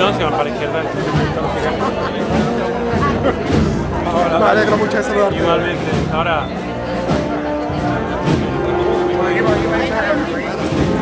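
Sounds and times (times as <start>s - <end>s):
crowd of voices talking: 0.0s - 11.0s
wind band playing: 0.0s - 11.0s.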